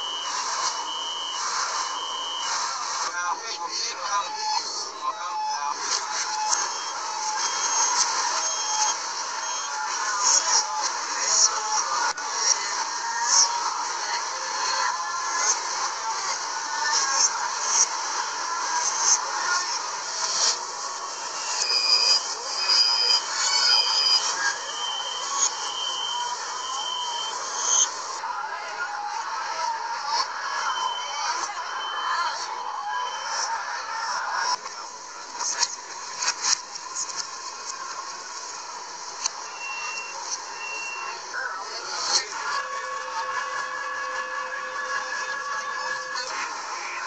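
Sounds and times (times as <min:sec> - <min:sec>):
short electronic beeps: 0:00.0 - 0:02.5, 0:21.3 - 0:27.9, 0:39.4 - 0:41.2
station noise hiss: 0:00.0 - 0:47.0.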